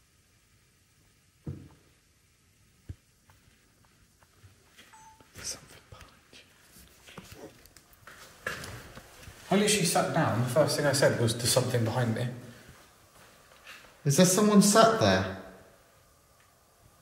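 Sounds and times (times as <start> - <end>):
dull thump: 1.4 - 1.8.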